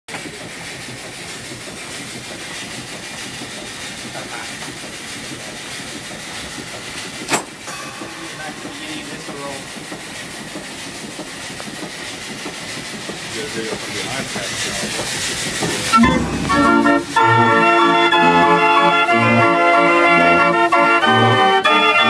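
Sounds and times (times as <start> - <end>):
organ mechanism airy hiss: 0.5 - 19.1.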